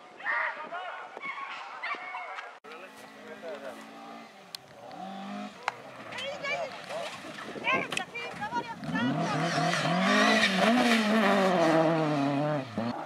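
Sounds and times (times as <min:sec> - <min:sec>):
bystanders talking: 0:00.3 - 0:10.6
rally car engine revving: 0:03.2 - 0:07.5, 0:08.7 - 0:13.0.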